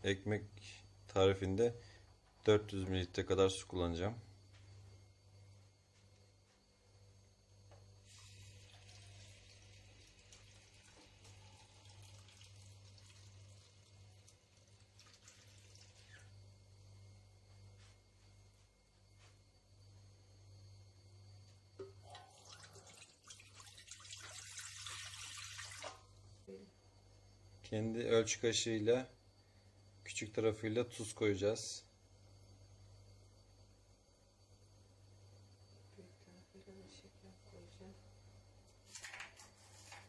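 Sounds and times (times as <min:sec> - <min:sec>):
low steady hum: 0:00.0 - 0:38.8
water pouring into pan: 0:08.0 - 0:16.3, 0:22.0 - 0:26.2
faint running water: 0:08.0 - 0:16.8, 0:21.7 - 0:26.5.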